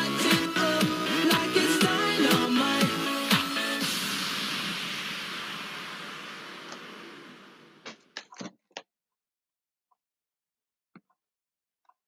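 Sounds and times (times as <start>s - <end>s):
explosion hiss-like rush: 3.8s - 7.8s.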